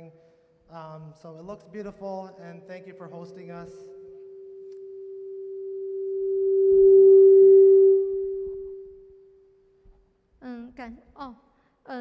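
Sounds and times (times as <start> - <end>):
microphone feedback tone: 2.4 - 9.8.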